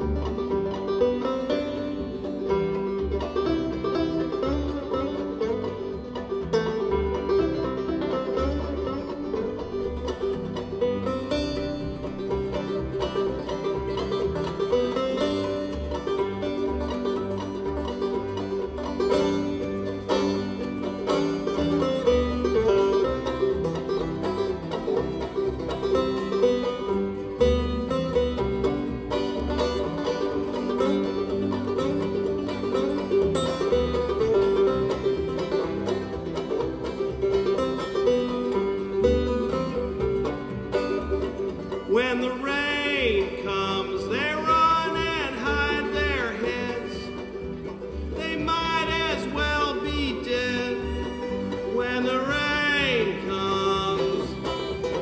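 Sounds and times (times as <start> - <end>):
banjo: 0.0 - 55.0
bluegrass string band: 0.0 - 55.0.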